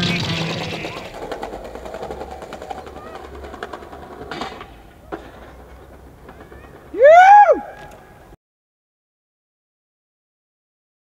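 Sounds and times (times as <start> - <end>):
skateboard wheels rolling over paving: 0.0 - 8.3.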